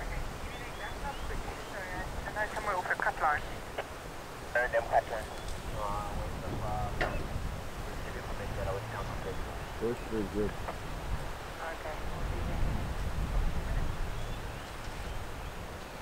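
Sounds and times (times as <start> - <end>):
indistinct voices talking: 0.0 - 10.9
faint low rumble: 4.5 - 15.6.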